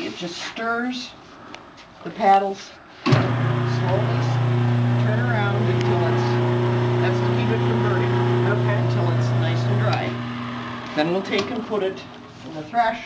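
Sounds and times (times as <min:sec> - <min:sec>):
motor low hum: 0:03.1 - 0:12.5.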